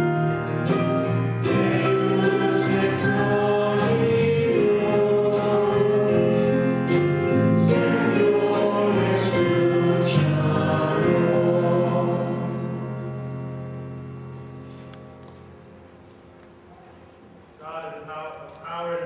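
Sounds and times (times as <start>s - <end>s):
church choir singing: 0.0s - 15.0s.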